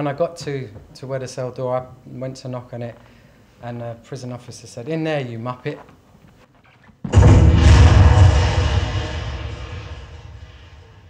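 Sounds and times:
steel door slamming: 7.1s - 11.0s.

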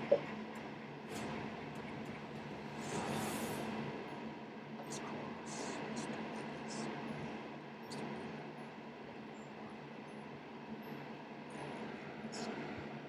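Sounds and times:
low steady drone: 0.0s - 13.0s.

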